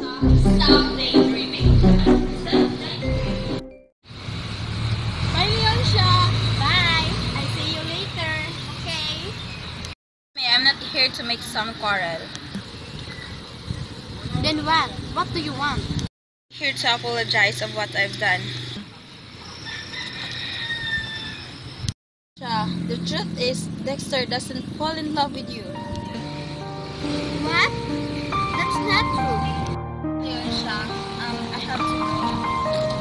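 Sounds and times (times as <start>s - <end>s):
young woman talking: 0.0s - 3.1s, 5.4s - 9.4s, 10.4s - 12.3s, 22.4s - 26.3s, 28.6s - 29.6s, 30.2s - 32.4s
low rumble: 0.2s - 3.6s
outdoor background noise: 4.1s - 29.0s.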